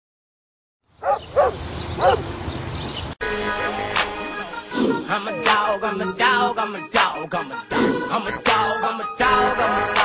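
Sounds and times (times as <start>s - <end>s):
dog barking: 1.0s - 2.3s.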